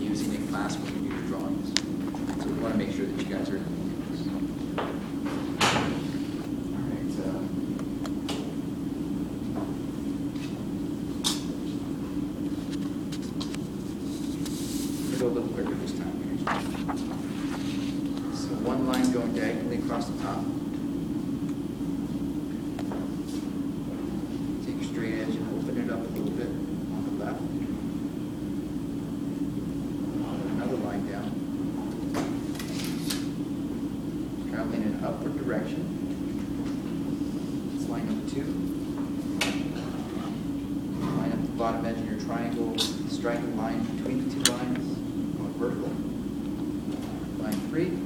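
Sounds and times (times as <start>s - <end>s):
fan hum: 0.0s - 48.0s.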